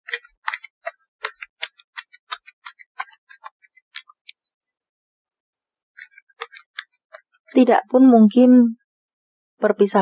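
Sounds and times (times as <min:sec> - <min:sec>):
cards being shuffled: 0:00.0 - 0:04.5, 0:06.0 - 0:07.4.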